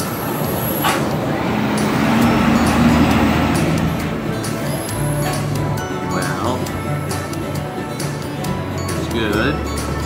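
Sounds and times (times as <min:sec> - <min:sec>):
heavy vehicle passing: 0:00.1 - 0:06.8.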